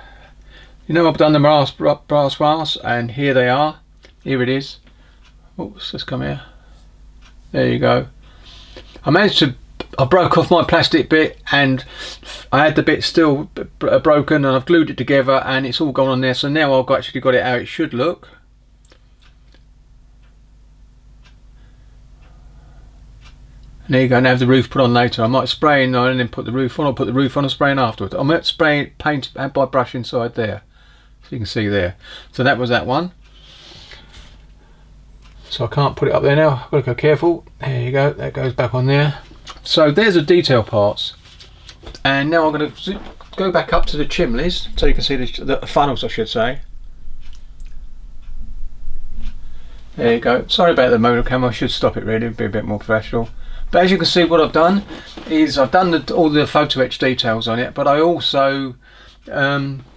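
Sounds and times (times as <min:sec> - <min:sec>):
low steady hum: 0:00.0 - 0:59.9.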